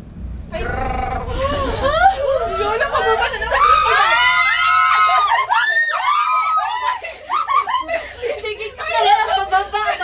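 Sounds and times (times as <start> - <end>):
women shrieking with laughter: 1.5 - 8.1.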